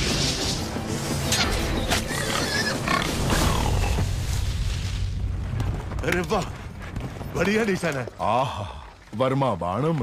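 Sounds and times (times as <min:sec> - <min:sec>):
boar grunting and squealing: 0:01.9 - 0:04.0.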